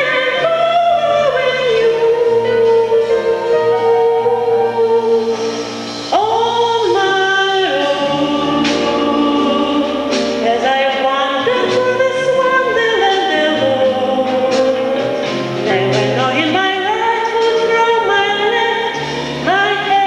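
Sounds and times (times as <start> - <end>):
woman singing into a microphone: 0.0 - 20.0.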